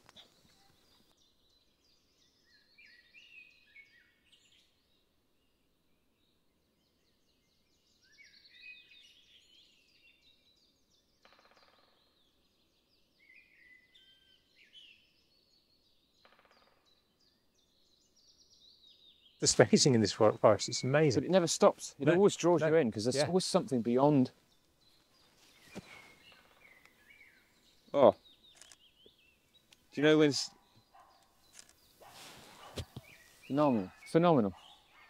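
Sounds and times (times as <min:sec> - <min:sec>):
songbirds warbling: 0:00.0 - 0:35.0
dry rattling bird calls: 0:11.1 - 0:12.2, 0:16.2 - 0:17.1, 0:19.4 - 0:35.0.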